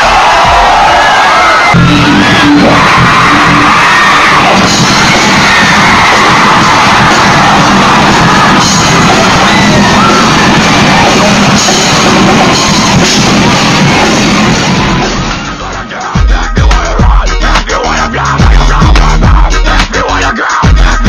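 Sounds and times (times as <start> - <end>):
people yelling: 0.0 - 14.9
heavy rock music: 0.0 - 21.0.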